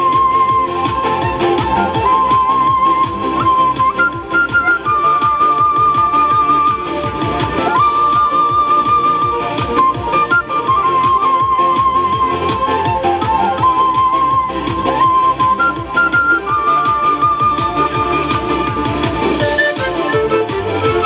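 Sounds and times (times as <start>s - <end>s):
backing track with steady beat: 0.0s - 21.0s
wooden flute long notes: 0.0s - 21.0s.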